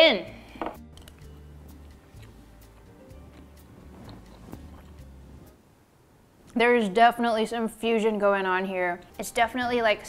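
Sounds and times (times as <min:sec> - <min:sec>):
soft music with bass line: 0:00.0 - 0:05.6.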